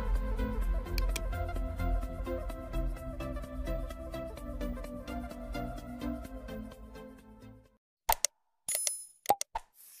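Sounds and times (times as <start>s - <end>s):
mouse clicks: 1.0s - 1.3s.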